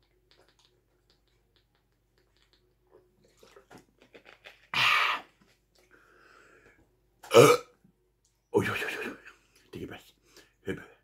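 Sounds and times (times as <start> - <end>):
man burping: 7.2 - 7.8.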